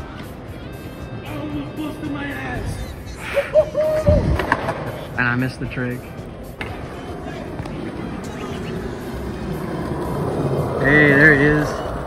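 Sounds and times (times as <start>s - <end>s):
skateboard clacks: 4.3s - 5.0s
skateboard thudding on pavement: 4.3s - 5.0s.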